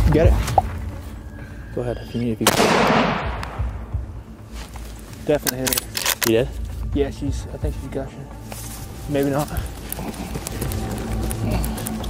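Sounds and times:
gunshot echoing through woods: 2.4 - 4.0.

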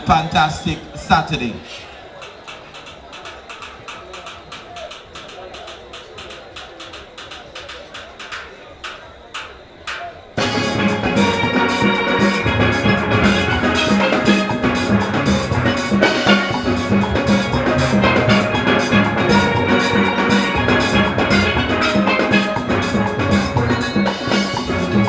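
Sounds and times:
steel band playing calypso: 2.2 - 25.0.

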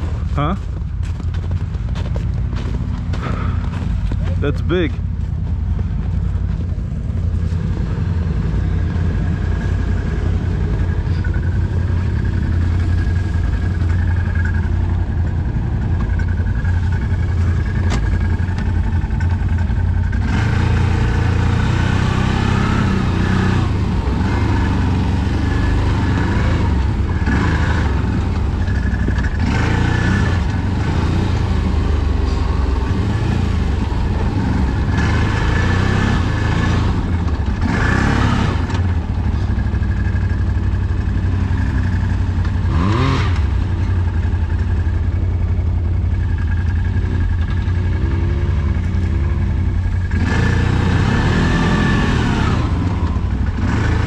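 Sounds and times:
off-road vehicle engine: 0.0 - 54.0.

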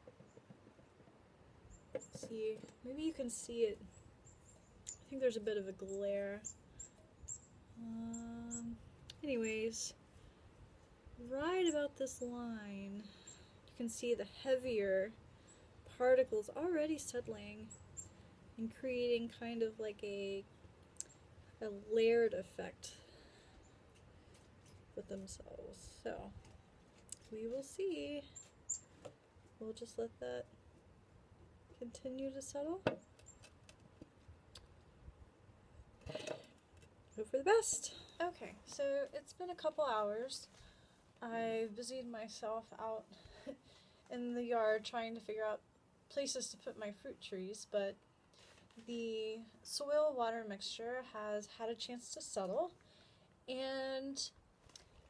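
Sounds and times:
woman saying um: 37.2 - 40.5.

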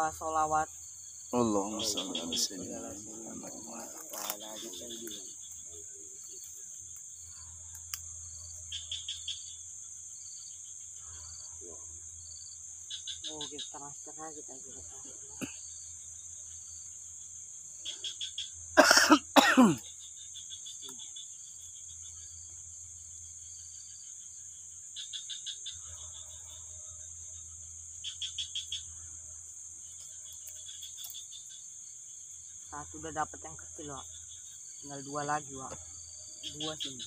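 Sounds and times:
night insects droning: 0.0 - 37.0
rapid cricket chirping: 0.0 - 37.0
person coughing: 18.8 - 19.8.

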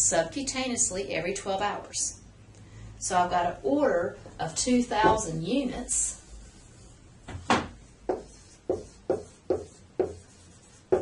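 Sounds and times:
marker tapping whiteboard: 7.3 - 11.0.

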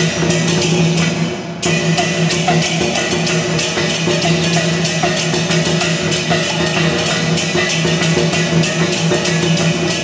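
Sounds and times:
cymbal clashes: 0.0 - 10.0
drum beating: 0.0 - 10.0.

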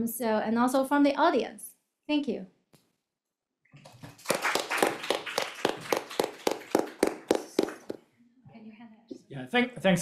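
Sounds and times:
hand clapping applause: 3.8 - 8.0.

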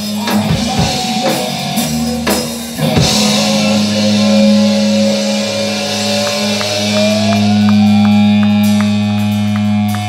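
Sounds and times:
electric guitar note ringing: 0.2 - 10.0.

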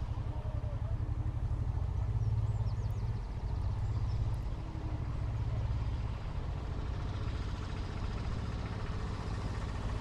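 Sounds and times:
tractor engines rumbling: 0.0 - 10.0.

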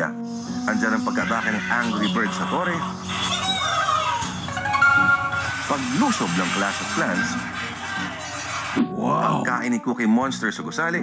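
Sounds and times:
held musical tones: 0.6 - 8.9
cartoon bird cry: 1.3 - 5.0.

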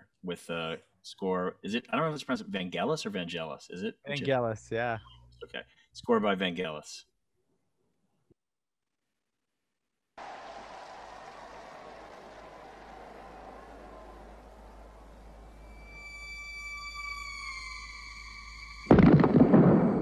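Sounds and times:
electronic tones sliding downward: 15.2 - 19.0
starter's pistol shot: 18.9 - 20.0.

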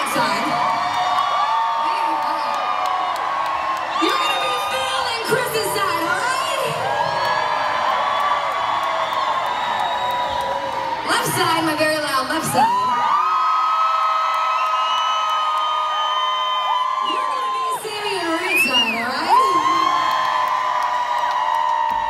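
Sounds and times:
crowd whooping and cheering: 0.0 - 22.0.

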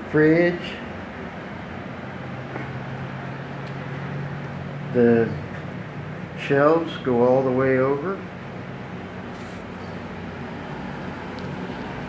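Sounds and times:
air conditioning unit humming: 0.0 - 12.0.

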